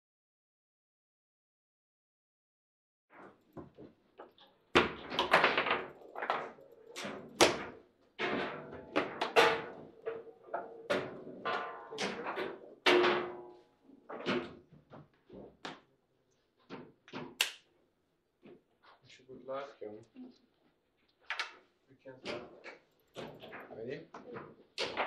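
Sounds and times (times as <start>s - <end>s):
foosball knocks and thuds: 4.8s - 14.6s.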